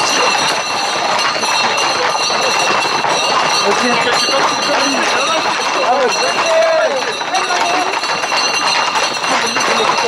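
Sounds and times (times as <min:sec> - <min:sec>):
horse hooves on paved road: 0:00.0 - 0:10.0
men shouting: 0:03.9 - 0:07.9.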